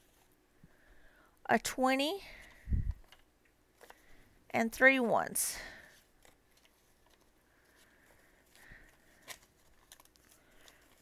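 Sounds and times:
banknotes rustling: 0.0 - 0.3, 5.8 - 11.0.

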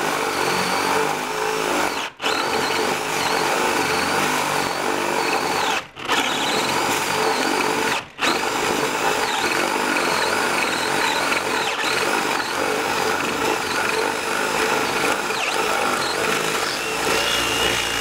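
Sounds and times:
drill whining into wood: 0.0 - 18.0.

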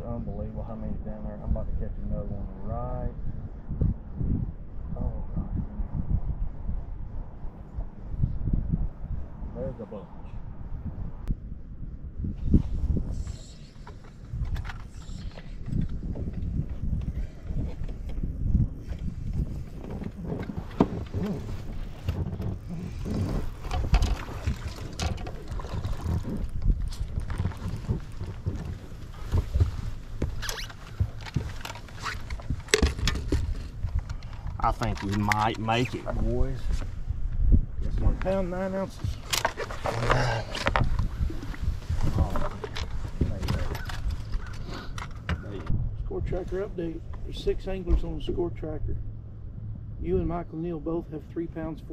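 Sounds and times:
wind on microphone: 0.0 - 51.0
knocks and splashes: 22.0 - 28.9.

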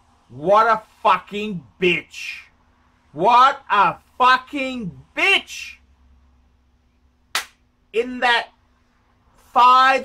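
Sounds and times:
faint electrical hum: 0.0 - 10.0
sharp hand clap: 7.3 - 7.6.

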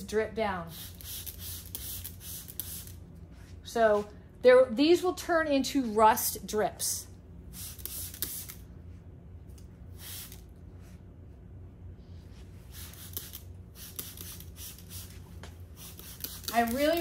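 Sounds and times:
spray bottle spritzing: 0.7 - 3.0, 7.6 - 8.6, 12.7 - 15.2, 15.8 - 17.0.

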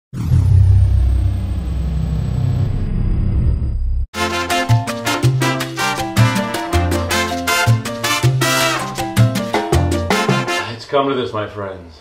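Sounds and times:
deep low rumble sound effect: 0.1 - 4.1.

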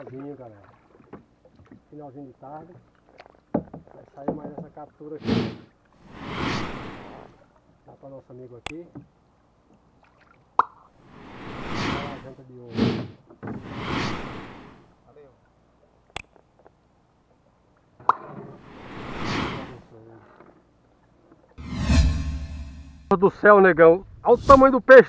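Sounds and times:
whoosh sound effect: 5.3 - 7.3, 11.1 - 14.6, 18.6 - 19.8, 21.6 - 23.1, 24.3 - 24.8.

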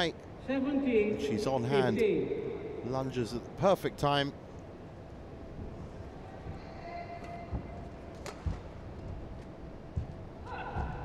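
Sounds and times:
indoor arena ambience: 0.0 - 11.0
soft low thuds: 7.4 - 11.0.

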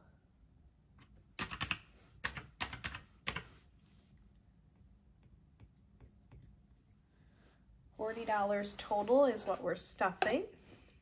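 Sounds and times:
calculator keys clicking: 1.4 - 3.4.

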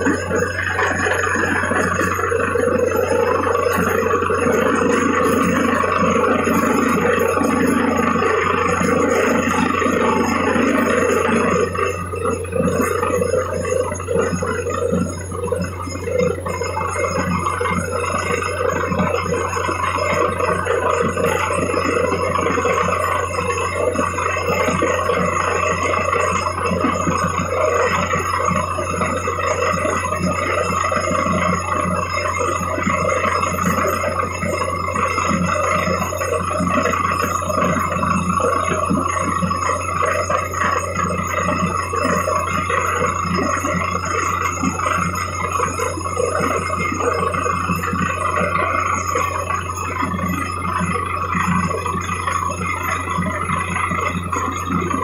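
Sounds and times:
drilling rig humming: 0.0 - 55.0.

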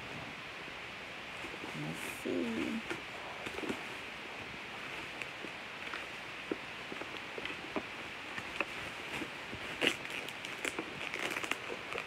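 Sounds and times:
steady hiss: 0.0 - 12.0
bubble wrap crinkling: 4.8 - 12.0.

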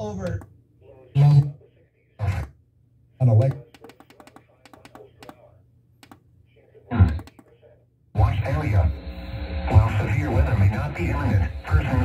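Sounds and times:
radio station voices: 0.0 - 5.6, 6.5 - 12.0
button presses: 3.4 - 5.4, 6.0 - 6.2, 7.1 - 7.5.

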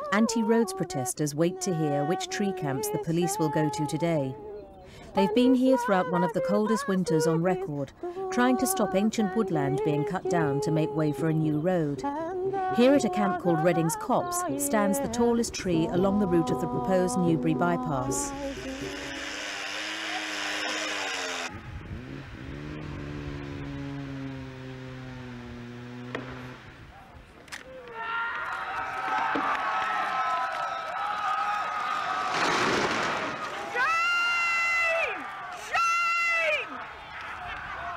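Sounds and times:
long held cries: 18.0 - 21.6
crowd shouting: 27.7 - 37.9.

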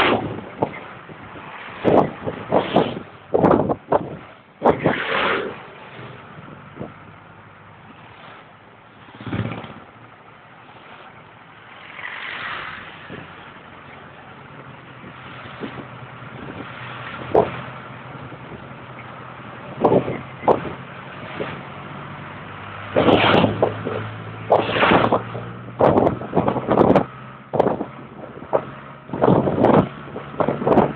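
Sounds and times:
road and wind noise: 0.0 - 30.9.

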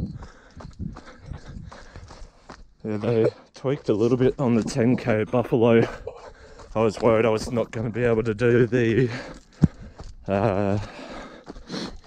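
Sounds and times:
footsteps on leafy dirt trail: 0.0 - 12.0.

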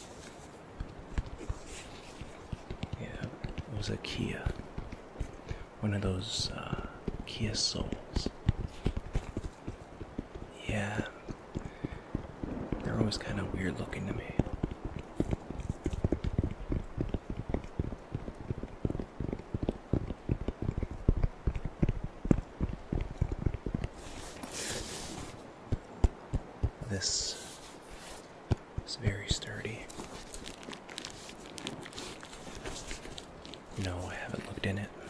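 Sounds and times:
fingers tapping on fabric case: 0.8 - 5.7, 6.6 - 24.0
short rustles: 23.9 - 25.5, 27.0 - 35.0.

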